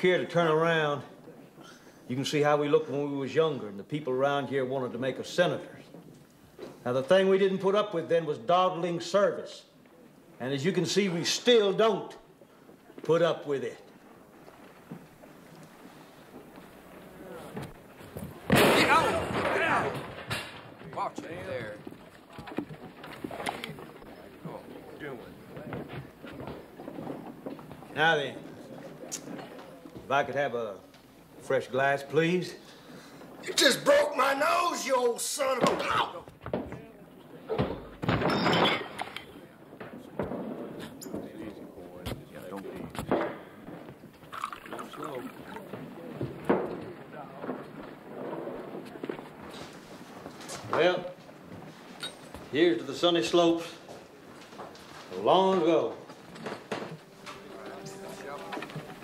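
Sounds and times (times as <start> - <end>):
murmur of voices: 20.8 - 31.6, 55.2 - 59.0.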